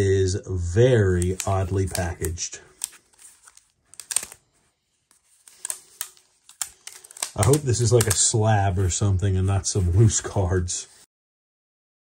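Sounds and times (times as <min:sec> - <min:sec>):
rubber bands clicking and rustling: 0:01.1 - 0:04.5, 0:05.1 - 0:08.5.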